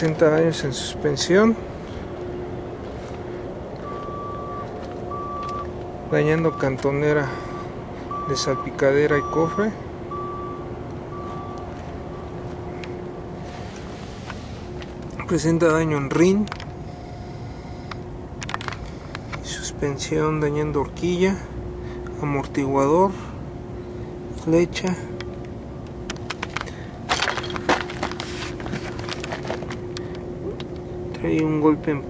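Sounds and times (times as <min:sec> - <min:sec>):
yard and vehicle rumble: 0:00.0 - 0:32.0
vehicle backup alarm beep: 0:03.8 - 0:13.0.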